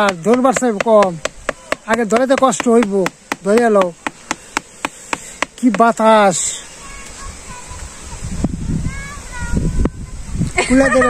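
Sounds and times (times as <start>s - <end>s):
stick beating bamboo tray: 0.0s - 6.0s.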